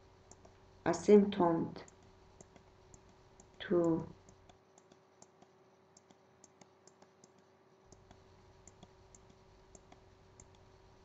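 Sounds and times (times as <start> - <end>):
faint hum: 0.0 - 11.0
small clicks: 0.3 - 0.6, 1.8 - 10.7.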